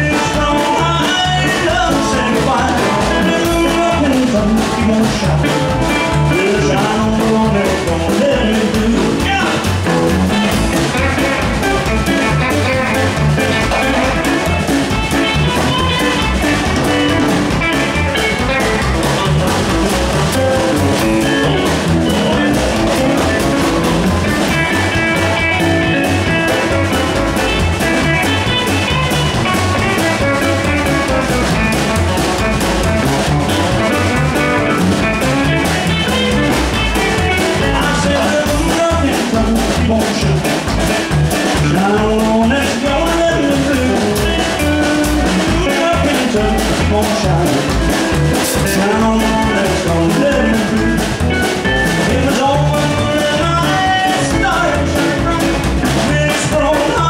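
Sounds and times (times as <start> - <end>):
drum kit: 0.0 - 57.0
electric lead guitar: 0.0 - 57.0
upright bass: 0.0 - 57.0.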